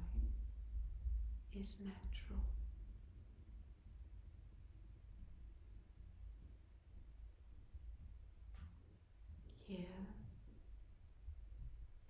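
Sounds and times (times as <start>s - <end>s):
woman speaking softly: 0.0s - 0.4s, 1.5s - 2.7s, 9.5s - 10.4s
low room hum: 0.0s - 12.0s.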